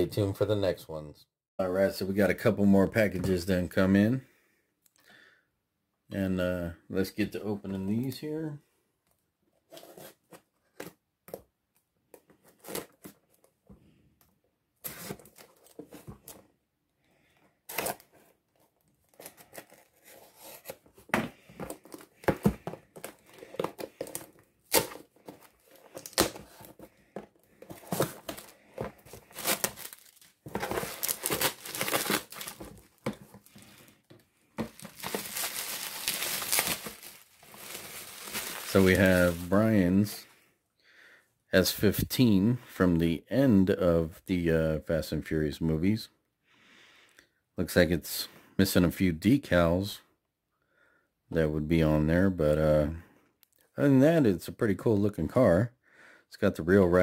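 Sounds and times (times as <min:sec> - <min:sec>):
cardboard tearing: 0:12.5 - 0:13.2, 0:17.7 - 0:18.4, 0:19.1 - 0:26.9, 0:27.6 - 0:33.9, 0:34.6 - 0:39.6
bubble wrap crinkling: 0:21.6 - 0:33.9, 0:34.6 - 0:39.8.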